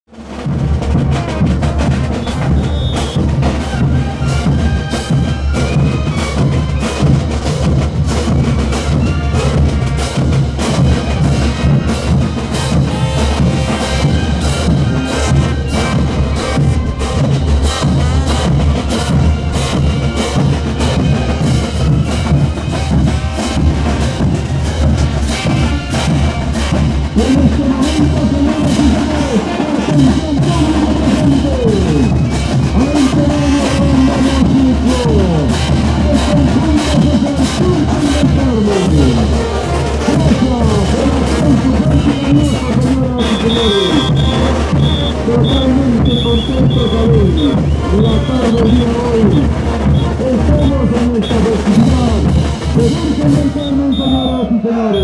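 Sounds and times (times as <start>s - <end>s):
bass drums: 0.1s - 55.0s
brass melody: 0.1s - 55.0s
snare drums: 0.1s - 55.0s.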